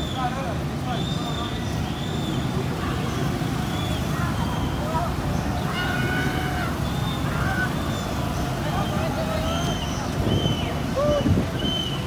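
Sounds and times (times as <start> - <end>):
distant voices and calls: 0.0 - 12.0.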